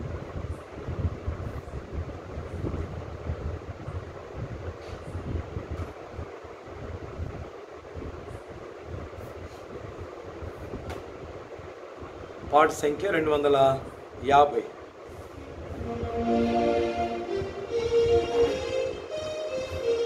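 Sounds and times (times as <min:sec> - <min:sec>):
background rumble and hiss: 0:00.0 - 0:20.0.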